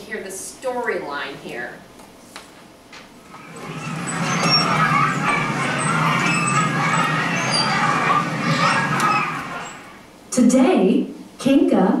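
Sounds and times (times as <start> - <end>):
recorded story over speakers: 0.0 - 12.0.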